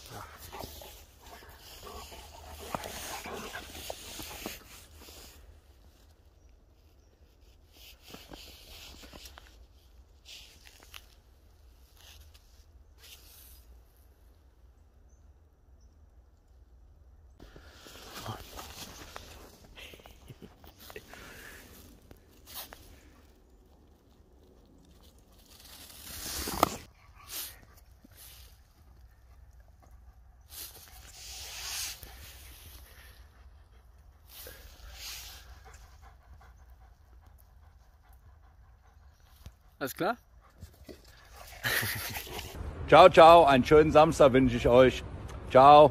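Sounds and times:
dog panting: 0.0 - 5.0, 32.0 - 42.6.

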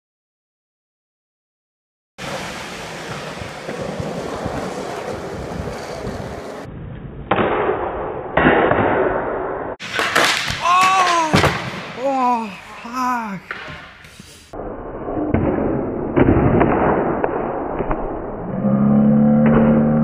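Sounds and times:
skateboard scraping on metal bar: 2.2 - 6.7
skateboard slamming on concrete: 2.2 - 6.7, 9.8 - 12.0
skateboard wheels rolling on concrete: 2.2 - 7.2
person shouting: 10.5 - 13.6.

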